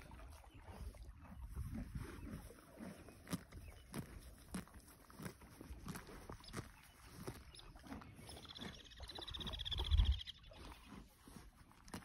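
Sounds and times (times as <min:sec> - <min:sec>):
horse tearing and chewing grass: 0:00.1 - 0:09.6, 0:10.5 - 0:12.0.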